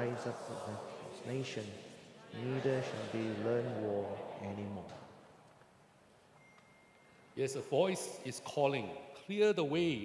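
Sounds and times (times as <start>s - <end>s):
thin high beep tone: 6.4s - 7.3s.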